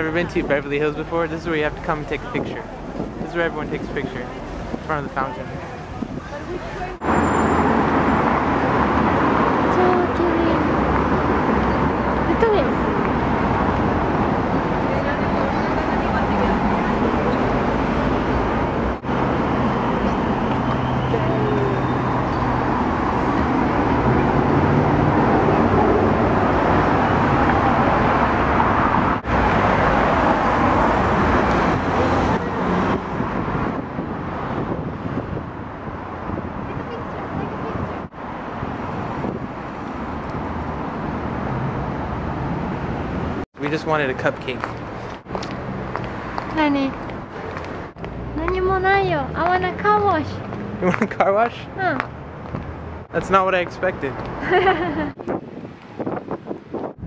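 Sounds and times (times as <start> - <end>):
cars passing on road: 0.0 - 57.0.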